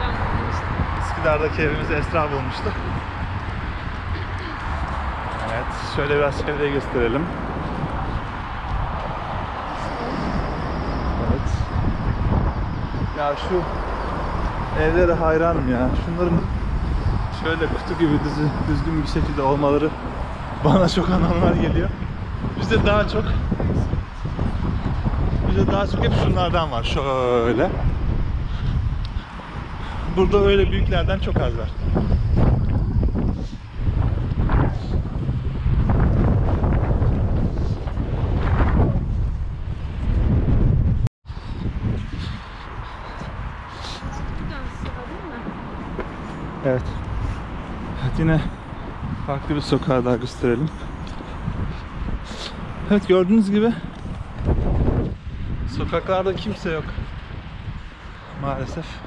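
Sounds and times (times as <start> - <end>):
road traffic hiss: 0.0 - 38.5, 41.2 - 59.0
wind buffeting microphone: 0.0 - 59.0.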